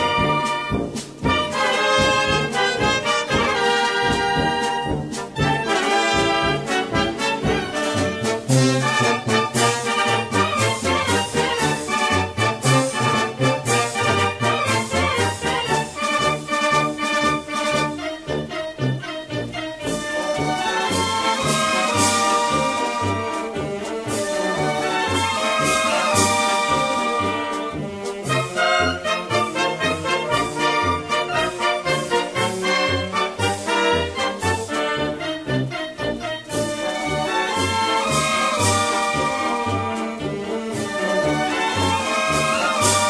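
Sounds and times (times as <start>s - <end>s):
brass band music: 0.0s - 43.0s.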